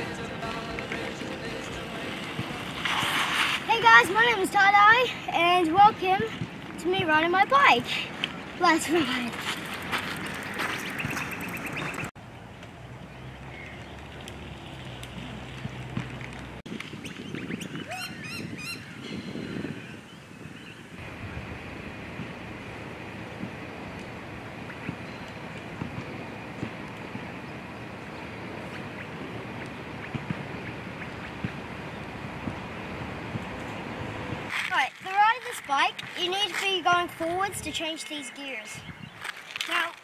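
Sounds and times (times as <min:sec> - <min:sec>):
bicycle tyres rolling on gravel: 0:00.0 - 0:12.1, 0:13.0 - 0:17.6, 0:21.0 - 0:38.1, 0:39.0 - 0:40.0.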